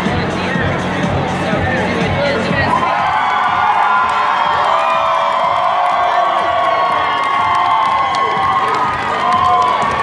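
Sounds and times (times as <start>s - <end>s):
large crowd cheering and yelling: 1.9s - 10.0s.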